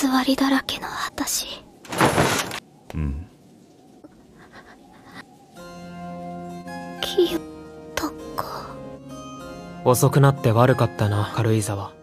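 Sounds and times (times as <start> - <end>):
soft background music: 5.2 - 12.0.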